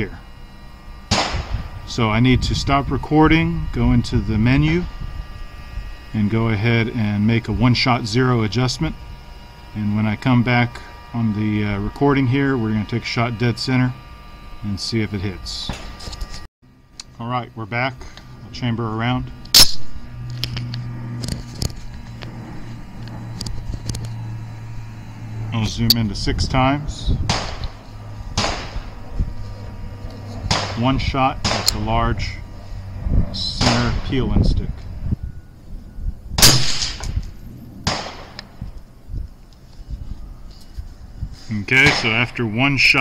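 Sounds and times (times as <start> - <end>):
steady low hum: 0.0 - 43.0
rifle shot ringing out: 1.1 - 1.5, 27.3 - 27.6, 28.4 - 28.9, 30.5 - 30.8, 31.4 - 31.8, 33.6 - 34.0, 36.4 - 37.2, 37.8 - 38.4, 41.8 - 42.3
weaker sharp report: 16.8 - 40.5, 41.5 - 43.0.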